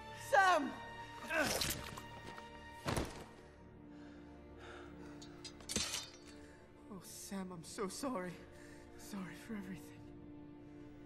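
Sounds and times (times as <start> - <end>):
quiet orchestral music: 0.0 - 11.0
heavy thud of body falling: 2.8 - 3.3.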